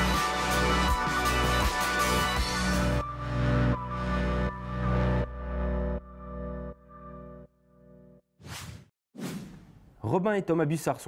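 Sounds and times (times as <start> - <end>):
quick whooshes: 8.4 - 9.9.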